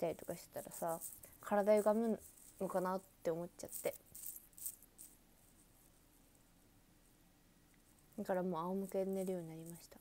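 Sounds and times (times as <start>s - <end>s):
soft hissy rustles: 0.0s - 10.0s.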